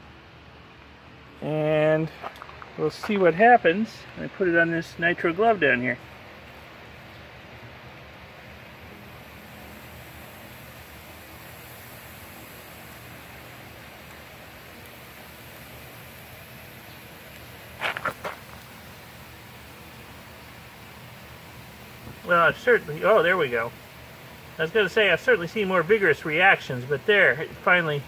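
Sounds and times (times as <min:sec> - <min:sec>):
faint high hiss: 0:00.0 - 0:28.0.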